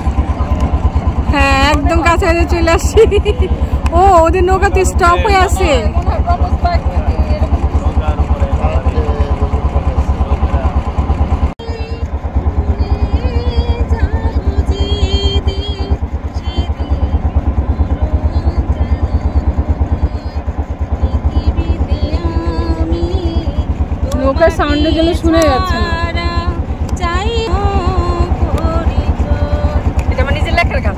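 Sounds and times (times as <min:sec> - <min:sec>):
boat engine thudding: 0:00.0 - 0:30.9.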